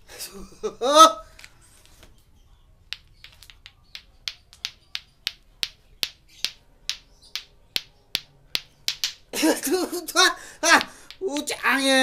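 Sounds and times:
plastic balls clacking together: 2.9s - 12.0s.

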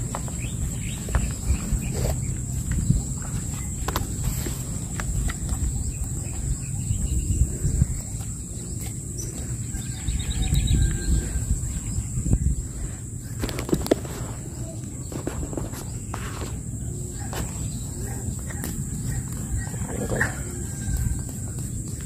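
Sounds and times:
low rumble on microphone: 0.0s - 22.0s.

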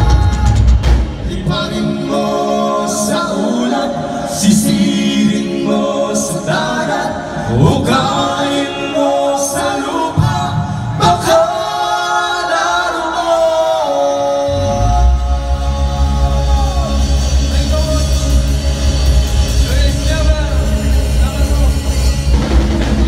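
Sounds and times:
bass and drums: 0.0s - 3.4s, 14.5s - 23.0s
person singing: 0.0s - 22.3s.

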